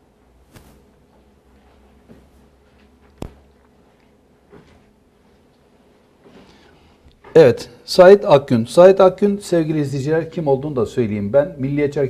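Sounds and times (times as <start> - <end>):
soft rustle: 0.4 - 7.0.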